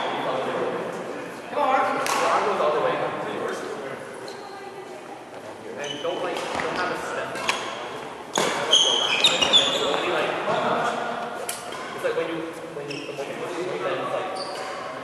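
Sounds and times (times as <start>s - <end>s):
shoe squeaks on court: 8.4s - 10.2s, 12.8s - 13.5s, 14.2s - 15.0s.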